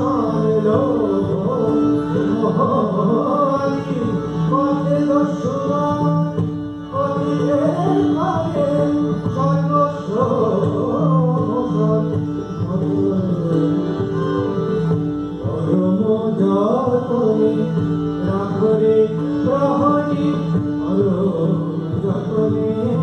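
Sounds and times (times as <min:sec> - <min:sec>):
sitar: 0:00.0 - 0:23.0
steady held accompanying notes: 0:00.0 - 0:23.0.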